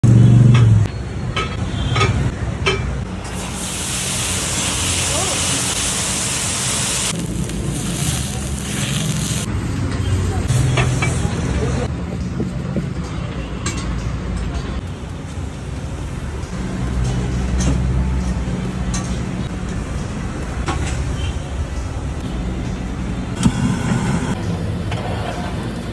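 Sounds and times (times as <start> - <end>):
water sizzling on hot pan: 3.2 - 9.5.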